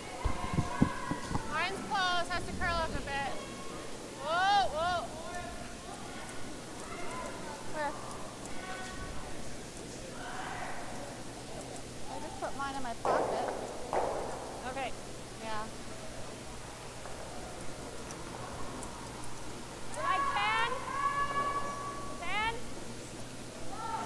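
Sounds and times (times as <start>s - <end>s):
steady low hum: 0.0s - 24.0s
people shouting in echoing rink: 20.0s - 22.6s.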